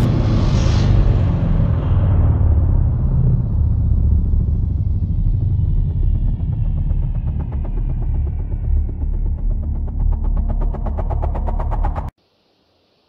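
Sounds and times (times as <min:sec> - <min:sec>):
deep cinematic rumble: 0:00.0 - 0:12.1
bright hiss: 0:12.2 - 0:13.0.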